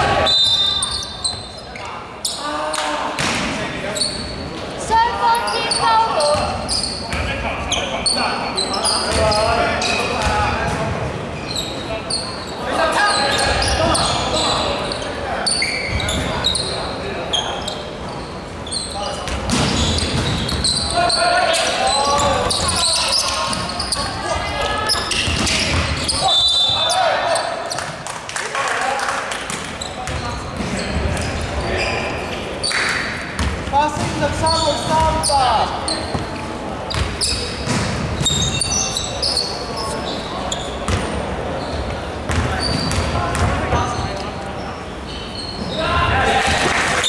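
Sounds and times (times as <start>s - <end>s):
sneakers squeaking: 0.0s - 28.0s, 29.4s - 47.0s
basketball bouncing on court: 10.2s - 10.9s, 19.2s - 20.8s, 25.1s - 26.2s, 30.0s - 31.3s, 33.4s - 34.3s, 36.0s - 38.6s, 40.9s - 41.2s, 42.2s - 44.1s
players calling out: 11.4s - 28.0s.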